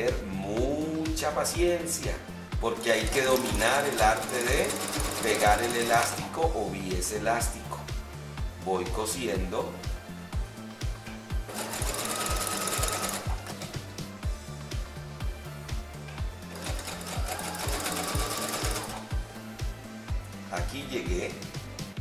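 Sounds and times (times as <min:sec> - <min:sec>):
background music with beat: 0:00.0 - 0:22.0
sewing machine stitching: 0:02.8 - 0:06.2, 0:11.5 - 0:13.8, 0:16.5 - 0:19.1.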